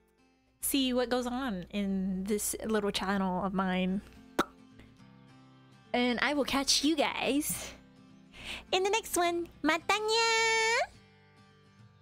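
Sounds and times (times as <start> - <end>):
soft background music: 0.2 - 12.0.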